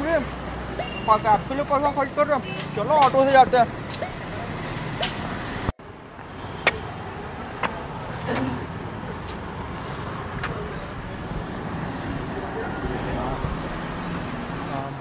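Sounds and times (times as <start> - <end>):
road traffic hum: 0.0 - 15.0.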